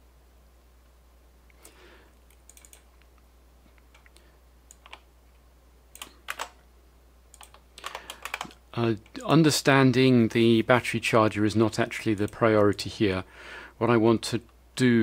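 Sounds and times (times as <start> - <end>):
computer keyboard typing: 2.4 - 2.9, 3.9 - 5.0, 5.9 - 6.6, 7.3 - 9.2.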